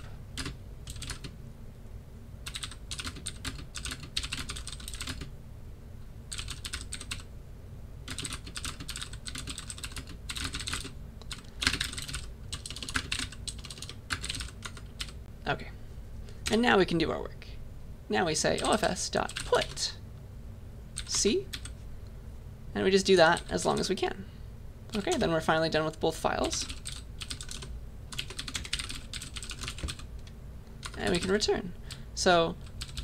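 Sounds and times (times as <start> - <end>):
computer keyboard typing: 0.0 - 1.3, 2.4 - 5.3, 6.3 - 7.3, 8.1 - 15.2, 19.3 - 19.8, 21.0 - 21.8, 24.9 - 25.2, 26.6 - 30.1, 30.8 - 31.4, 32.6 - 33.0
steady low hum: 0.0 - 33.0.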